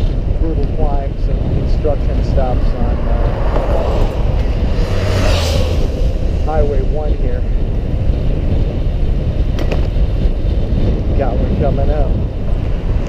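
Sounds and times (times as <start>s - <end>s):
wind rushing over microphone: 0.0s - 13.0s.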